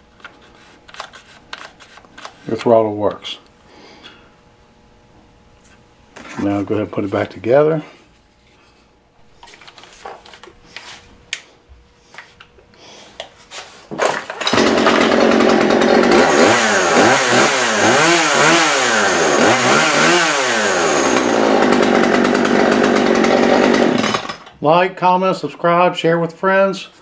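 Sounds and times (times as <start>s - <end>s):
chainsaw engine revving: 14.4s - 24.4s.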